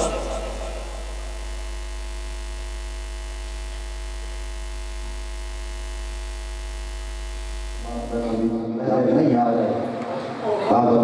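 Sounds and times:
electrical mains hum: 0:00.0 - 0:08.8.

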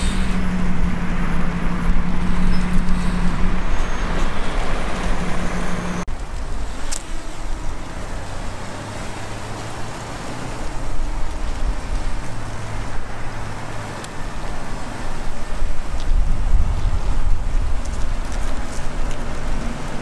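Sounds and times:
cars passing: 0:00.0 - 0:20.0
low engine hum: 0:00.0 - 0:20.0.

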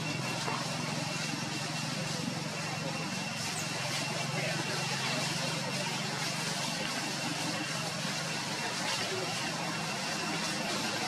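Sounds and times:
low engine-like hum: 0:00.0 - 0:11.0
murmur of distant voices: 0:00.0 - 0:11.0.

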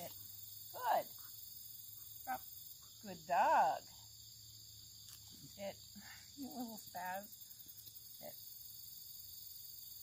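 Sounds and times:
crickets and insects trilling: 0:00.0 - 0:10.0.

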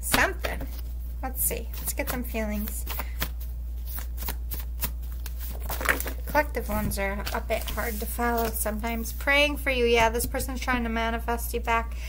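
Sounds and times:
steady low hum: 0:00.0 - 0:12.0
cards shuffled by hand: 0:01.6 - 0:09.2.

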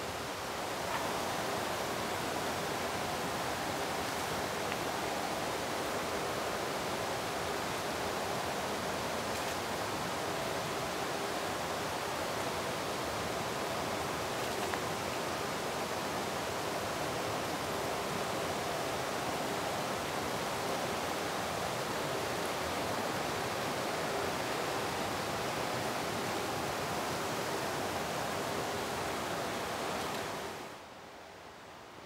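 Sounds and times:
stream rushing over rocks: 0:00.0 - 0:31.0.

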